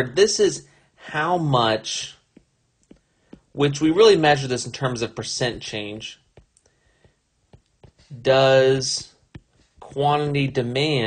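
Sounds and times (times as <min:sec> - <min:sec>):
stylus tapping on touchscreen: 0:02.3 - 0:03.6, 0:05.4 - 0:08.2, 0:08.9 - 0:10.7.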